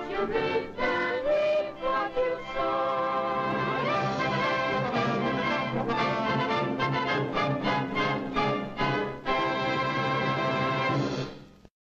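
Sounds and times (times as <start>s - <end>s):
orchestral chord: 3.1s - 11.3s.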